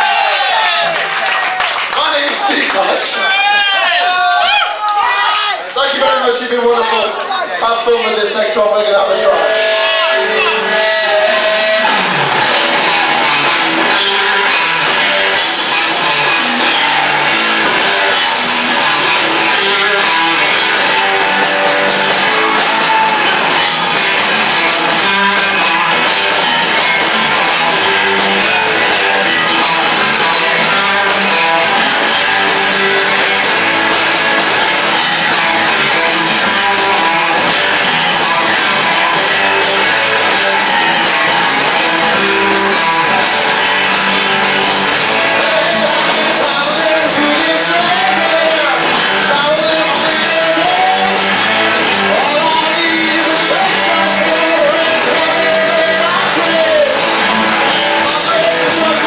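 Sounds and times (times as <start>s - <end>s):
blues-rock band playing: 6.0s - 59.0s
electric guitar: 8.0s - 59.0s.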